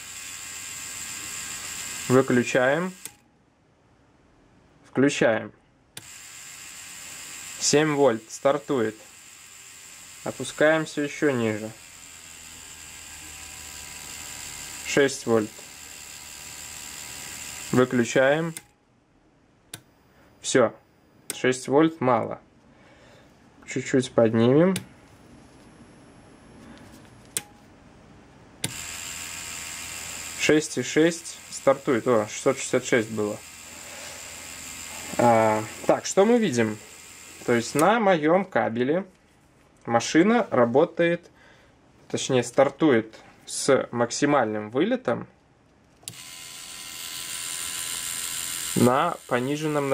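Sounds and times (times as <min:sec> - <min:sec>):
tattoo machine motor cutting off: 0:00.0 - 0:03.2, 0:06.0 - 0:18.7, 0:28.6 - 0:38.0, 0:46.0 - 0:49.9.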